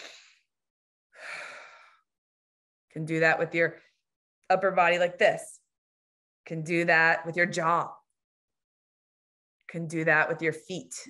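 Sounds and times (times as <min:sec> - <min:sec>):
woman breathing: 0:01.2 - 0:02.1.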